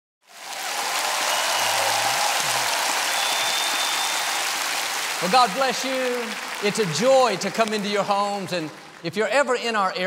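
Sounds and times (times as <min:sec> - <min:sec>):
congregation applauding: 0:00.2 - 0:10.0.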